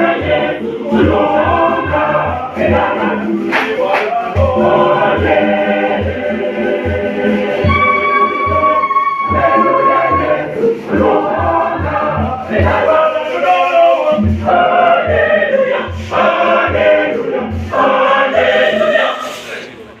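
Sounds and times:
conga drums beating: 0.0s - 18.4s
mixed choir singing: 0.0s - 19.7s.

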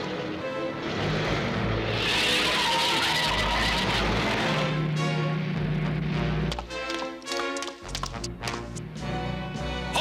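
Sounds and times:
cartoon jeep engine pulling away: 0.8s - 6.2s.

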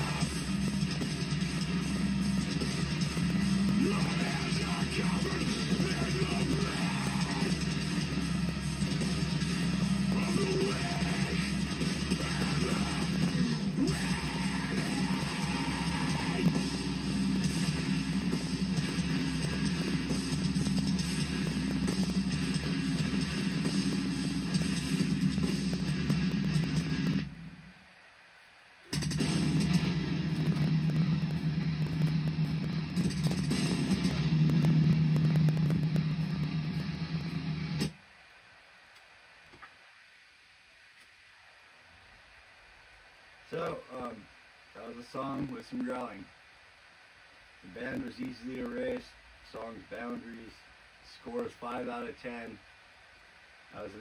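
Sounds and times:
heavy metal song: 0.0s - 27.3s, 28.9s - 37.9s.

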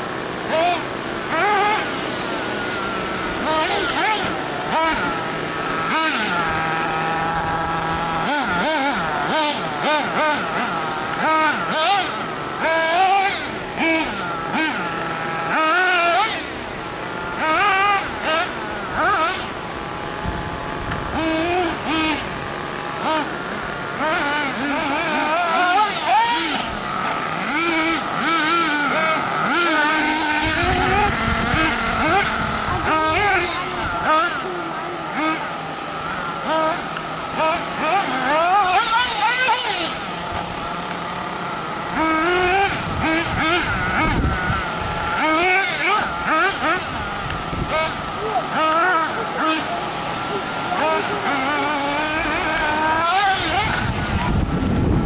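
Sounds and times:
small two-stroke engine revving: 0.0s - 55.0s.

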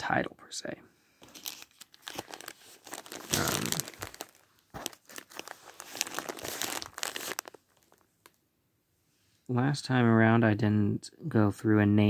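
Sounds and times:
plastic crinkling and clicking: 1.2s - 8.4s.

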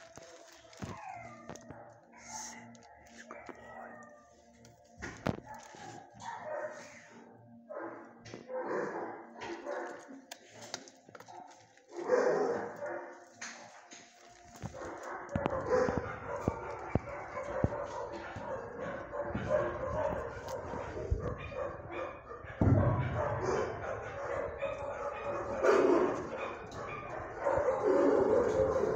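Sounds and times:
dogs barking: 0.0s - 28.9s.

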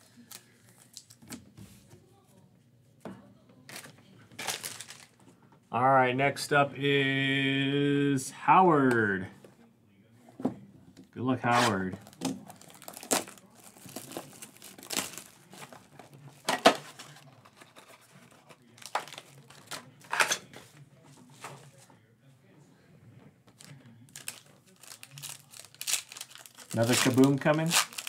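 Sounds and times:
foil and cardboard crinkling: 4.4s - 5.2s, 11.5s - 20.0s, 23.6s - 28.0s.

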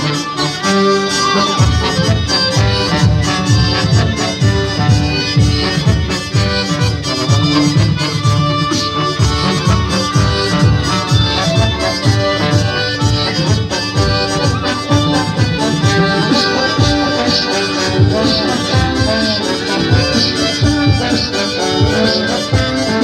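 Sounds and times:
reedy melody of held notes: 0.0s - 23.0s
steady low beat: 1.2s - 23.0s.

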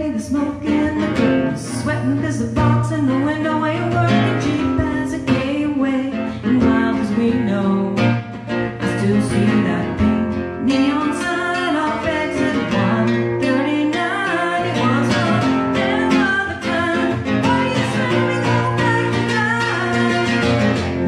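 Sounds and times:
strummed acoustic guitar: 0.0s - 21.0s
woman singing: 0.0s - 21.0s.

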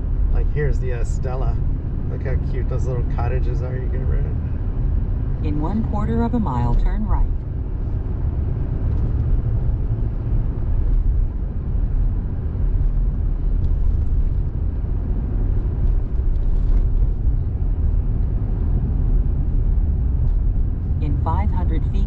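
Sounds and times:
car engine and tyre noise from inside: 0.0s - 22.0s.

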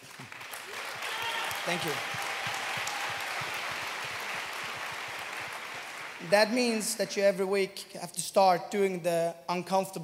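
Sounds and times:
large audience applauding: 0.0s - 7.0s.

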